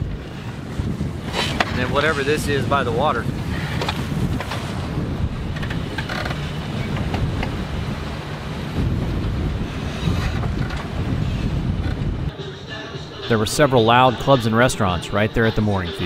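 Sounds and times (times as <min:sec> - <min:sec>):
wind buffeting microphone: 0:00.0 - 0:12.4
water rushing along hulls: 0:00.0 - 0:16.0.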